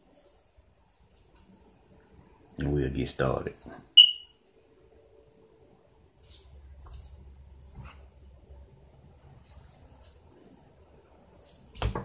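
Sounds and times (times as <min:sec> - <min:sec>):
soft hisses: 0:00.0 - 0:01.9, 0:06.1 - 0:08.2, 0:09.2 - 0:10.6
high electronic beep: 0:04.0 - 0:04.3.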